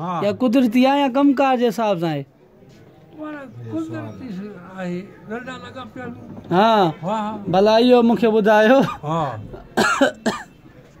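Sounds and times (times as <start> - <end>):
harsh coughing: 8.8 - 10.6.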